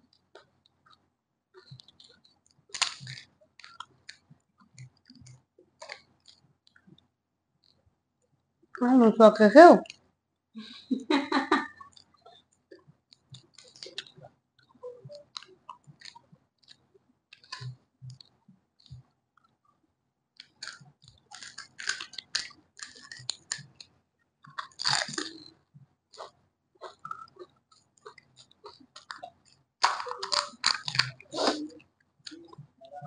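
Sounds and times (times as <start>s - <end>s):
crisp crunches of chewing: 1.6s - 7.0s, 11.8s - 19.6s, 20.4s - 32.7s
wet mouth sounds: 13.1s - 16.8s, 20.4s - 25.5s, 26.1s - 32.8s
mouth clicks: 24.5s - 25.5s, 26.2s - 33.0s.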